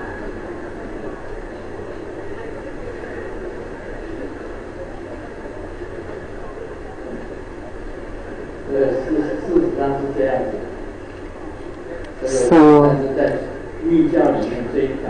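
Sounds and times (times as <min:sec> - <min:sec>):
audience laughing and murmuring: 0:00.0 - 0:15.0.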